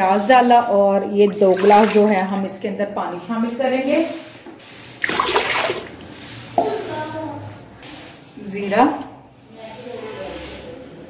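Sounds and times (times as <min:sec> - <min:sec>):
water poured into metal pot: 0:01.3 - 0:02.2.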